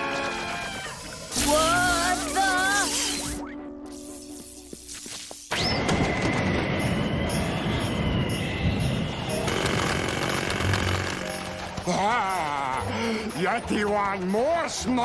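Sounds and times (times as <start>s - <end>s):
rushing blizzard wind effect: 5.5s - 11.7s.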